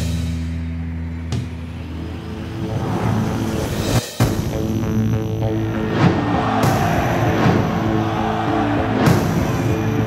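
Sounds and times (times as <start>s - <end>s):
low rumbling swell: 1.8s - 4.0s.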